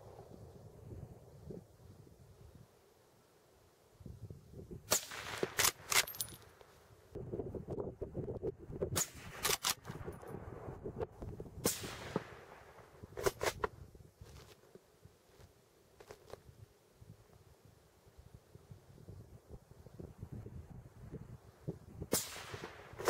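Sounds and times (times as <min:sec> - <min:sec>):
suppressed rifle shots: 0:04.9 - 0:06.2, 0:22.1 - 0:23.0
rifle bolt clicks: 0:05.4 - 0:06.4, 0:09.4 - 0:09.8.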